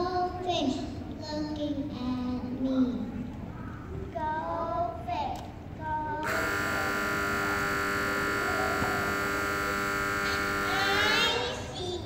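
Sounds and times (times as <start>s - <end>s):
faint children's voices: 0.0s - 12.0s
held chord tone: 6.2s - 11.2s.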